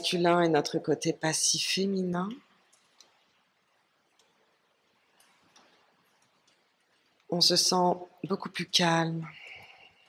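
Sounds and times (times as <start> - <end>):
soft ticks: 2.7 - 3.2, 4.1 - 4.4.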